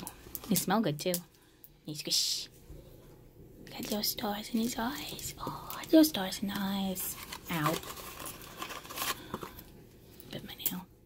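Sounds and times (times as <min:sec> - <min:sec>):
woman's soft wordless voice: 0:00.0 - 0:02.6, 0:03.6 - 0:07.8, 0:10.3 - 0:11.0.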